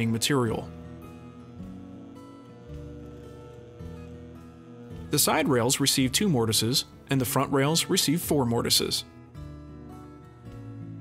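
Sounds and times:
music with soft sustained notes: 0:00.0 - 0:11.0.

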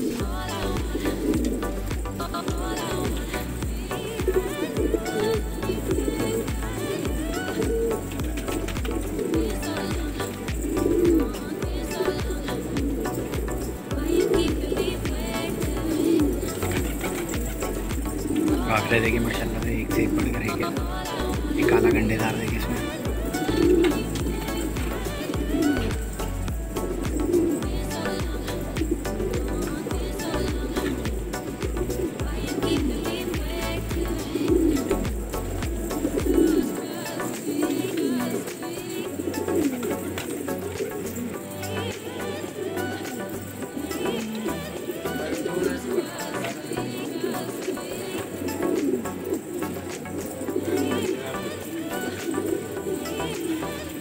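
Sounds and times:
background music: 0:00.0 - 0:54.0
pigeons cooing: 0:00.0 - 0:54.0.

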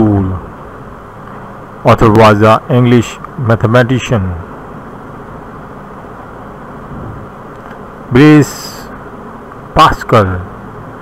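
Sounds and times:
steady hiss and rumble: 0:00.0 - 0:11.0.

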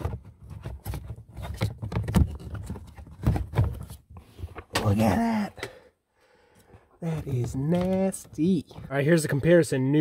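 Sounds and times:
hands rustling and scraping plastic: 0:00.0 - 0:05.2, 0:07.0 - 0:09.7.

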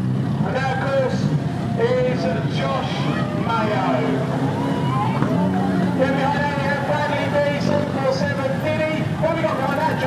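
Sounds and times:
people talking: 0:01.8 - 0:04.2, 0:04.9 - 0:10.0.

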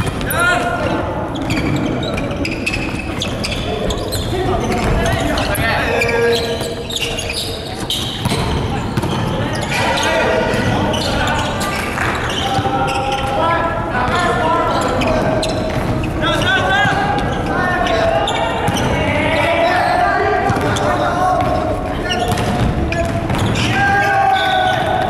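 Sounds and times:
players shouting: 0:00.0 - 0:25.0.

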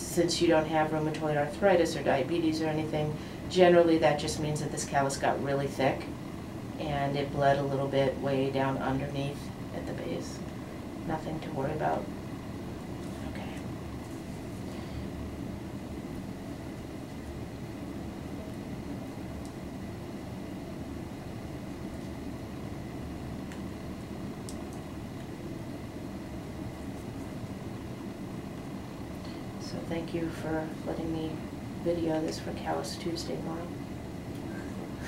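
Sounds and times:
low background hum: 0:00.0 - 0:35.0.

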